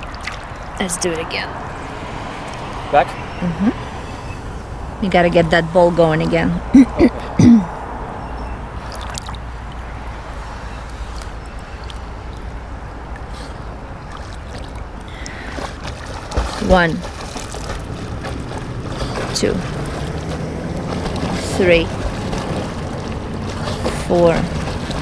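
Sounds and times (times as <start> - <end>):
lake water lapping: 0.0 - 4.7, 8.7 - 25.0.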